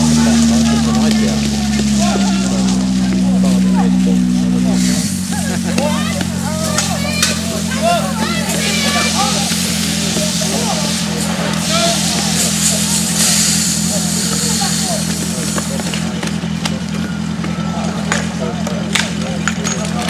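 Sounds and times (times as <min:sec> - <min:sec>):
low engine hum: 0:00.0 - 0:20.0
people talking and calling out: 0:00.0 - 0:20.0.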